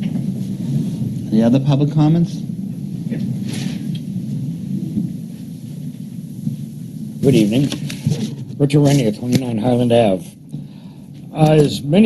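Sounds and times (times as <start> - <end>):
low room noise rumble: 0.0 - 12.0.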